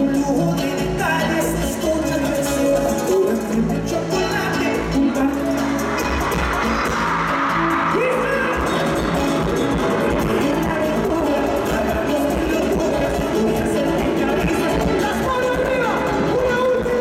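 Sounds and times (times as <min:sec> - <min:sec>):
live band playing bachata: 0:00.0 - 0:17.0
man singing lead vocal: 0:00.0 - 0:17.0.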